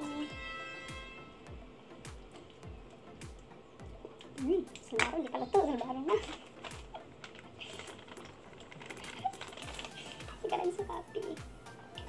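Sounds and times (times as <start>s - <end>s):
plastic bag rustling: 5.7s - 11.0s.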